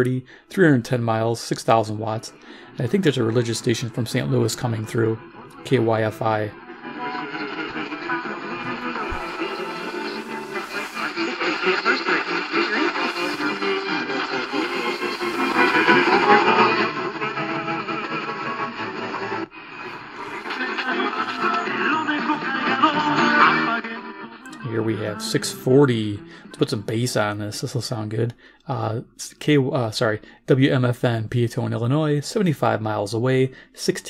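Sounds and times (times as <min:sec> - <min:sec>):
radio music with voice: 0:00.0 - 0:34.0.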